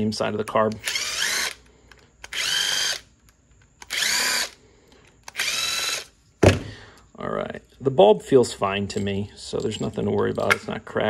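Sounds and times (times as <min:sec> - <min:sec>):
cordless driver motor whine: 0:00.8 - 0:03.1, 0:03.8 - 0:04.6, 0:05.3 - 0:06.1.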